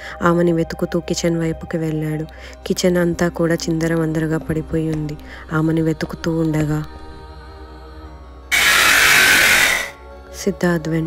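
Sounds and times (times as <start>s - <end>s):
faint background music: 0.0s - 11.0s
harsh hissing noise: 8.5s - 10.0s.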